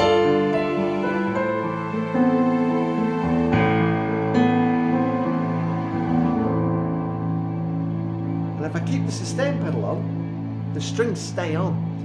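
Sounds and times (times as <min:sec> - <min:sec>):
digital piano chord: 0:00.0 - 0:12.0
sustained strings tone: 0:00.4 - 0:12.0.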